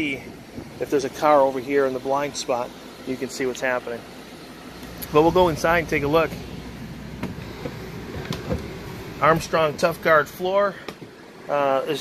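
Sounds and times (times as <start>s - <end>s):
steady low rumble: 4.7s - 10.7s.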